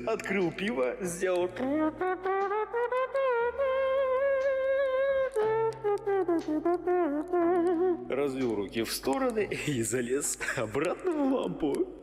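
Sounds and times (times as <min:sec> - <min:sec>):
saxophone slow melody: 0:01.4 - 0:08.4.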